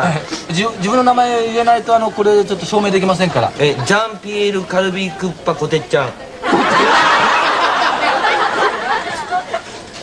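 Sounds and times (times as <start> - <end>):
audience laughing: 6.4 - 9.9.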